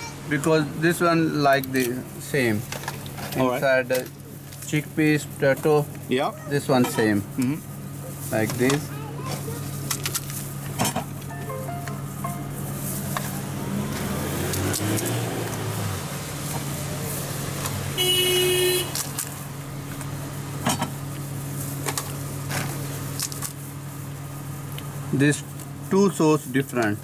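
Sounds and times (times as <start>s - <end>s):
street traffic hum: 0.0s - 27.0s
car horn toot: 18.0s - 19.0s.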